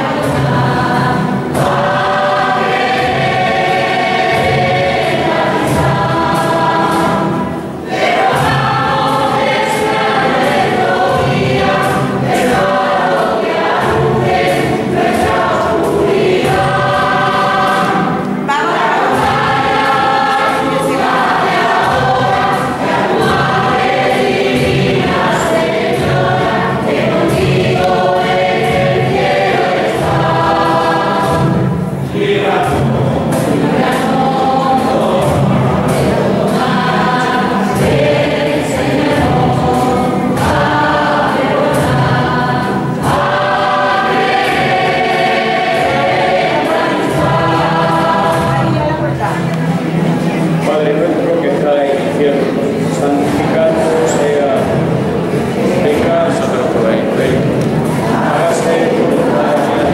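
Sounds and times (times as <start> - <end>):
congregation singing a hymn: 0.0 - 59.9.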